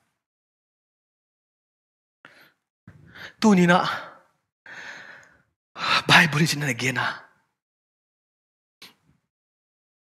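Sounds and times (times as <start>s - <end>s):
man speaking: 6.0s - 7.3s.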